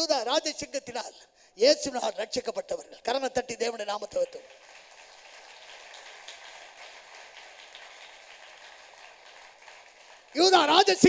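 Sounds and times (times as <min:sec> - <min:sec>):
man's voice: 0:00.0 - 0:04.5, 0:10.3 - 0:11.0.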